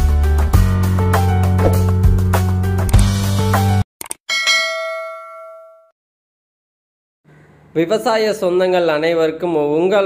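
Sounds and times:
bell ding: 0:04.3 - 0:05.9.

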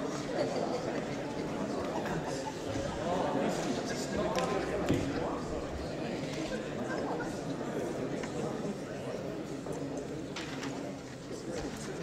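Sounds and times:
murmur of conversation: 0:00.0 - 0:12.0.

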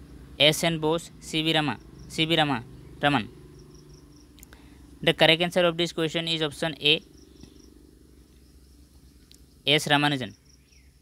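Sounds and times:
insect chirping: 0:00.0 - 0:11.0
low steady hum: 0:00.0 - 0:11.0.

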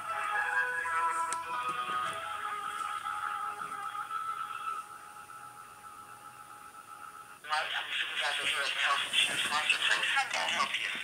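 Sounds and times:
hold music through phone speaker: 0:00.0 - 0:11.0.

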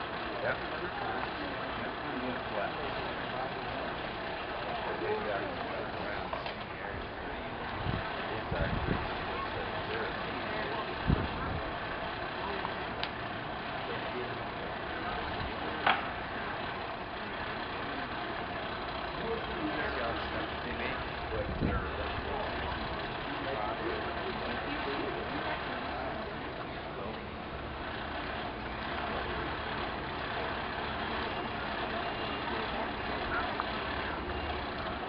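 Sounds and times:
indistinct voices: 0:00.0 - 0:35.0
low rumble and hiss: 0:00.0 - 0:35.0.

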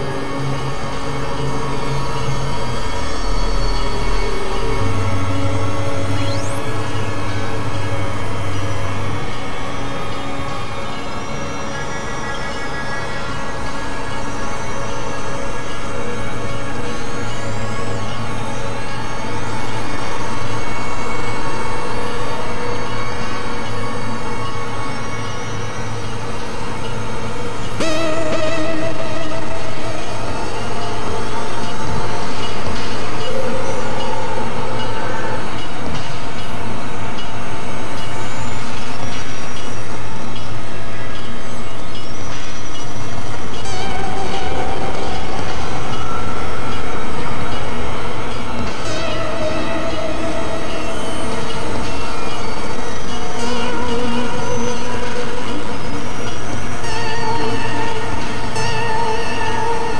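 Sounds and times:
synthesizer drone music: 0:00.0 - 0:59.9.

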